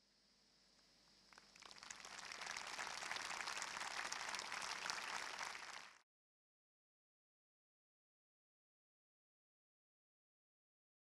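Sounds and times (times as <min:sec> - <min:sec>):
audience applauding: 0:01.4 - 0:06.0.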